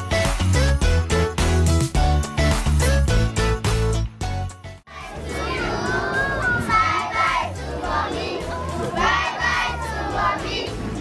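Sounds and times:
background music: 0.0 - 11.0
children shouting and singing: 4.9 - 11.0.

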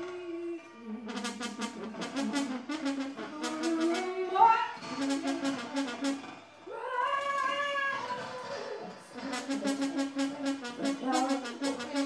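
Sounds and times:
woman singing high held note: 3.1 - 8.1, 9.2 - 12.0.

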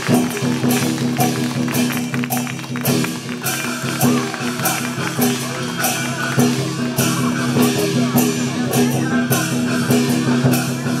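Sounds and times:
percussion strikes: 0.0 - 11.0.

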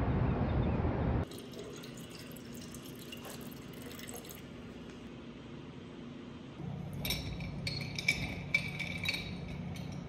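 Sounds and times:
ice clinking in glass jar: 7.0 - 10.0.

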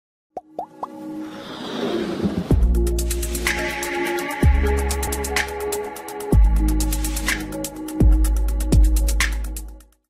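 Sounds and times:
synthesized music: 0.4 - 9.8.

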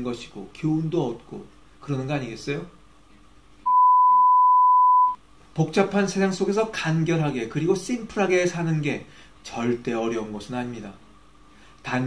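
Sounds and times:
high electronic beep: 3.7 - 5.2.

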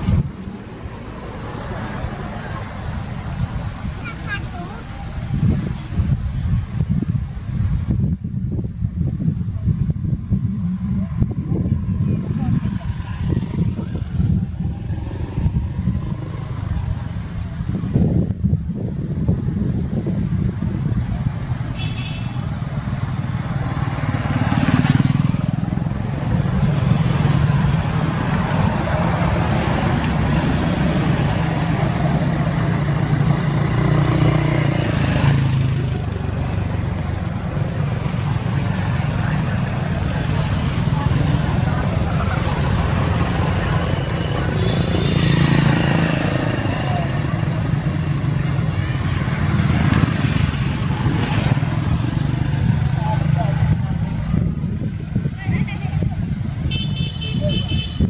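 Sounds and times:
passing motor traffic: 0.0 - 58.0
people's voices: 0.0 - 58.0.

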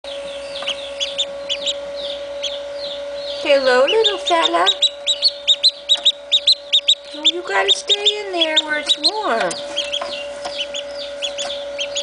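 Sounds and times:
steady hum: 0.0 - 12.0
duckling peeping: 0.1 - 12.0.

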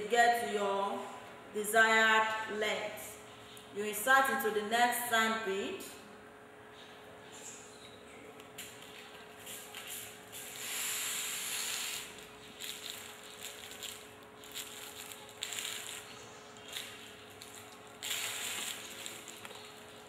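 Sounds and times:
beads rattling in a dish: 11.9 - 16.1.

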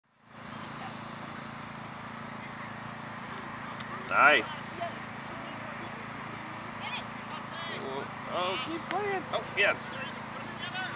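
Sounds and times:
faint distant voices: 0.4 - 10.9.

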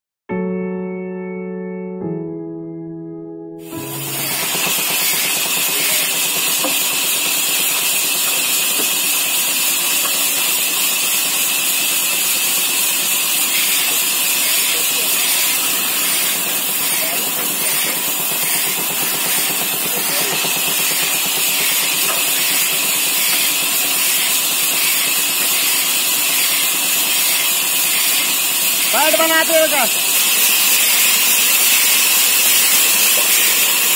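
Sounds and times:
band saw cutting wood: 3.6 - 33.9.

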